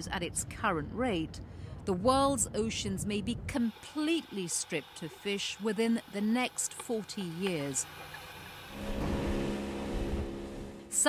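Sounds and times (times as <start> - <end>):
boat motor droning: 3.5 - 11.0
wind and water rumble: 7.9 - 11.0.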